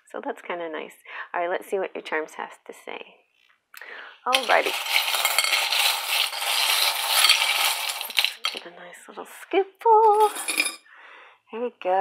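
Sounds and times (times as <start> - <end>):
small metal charms jingling: 4.3 - 8.6, 10.0 - 10.8.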